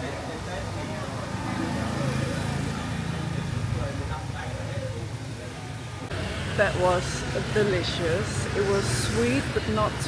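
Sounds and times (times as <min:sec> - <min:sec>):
faint voices: 0:00.0 - 0:10.0
low hum of motor traffic: 0:00.0 - 0:10.0.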